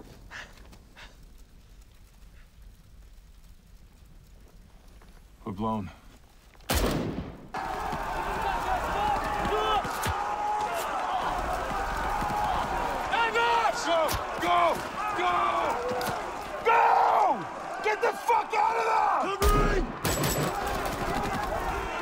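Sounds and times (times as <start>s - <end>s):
gunshot cracks: 6.7s - 7.5s
men shouting: 7.6s - 22.0s.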